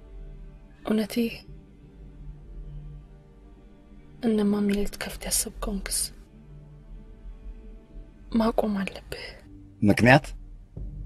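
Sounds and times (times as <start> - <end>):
faint low background: 0.0 - 11.0
man speaking: 9.8 - 10.3
person speaking: 9.8 - 10.3.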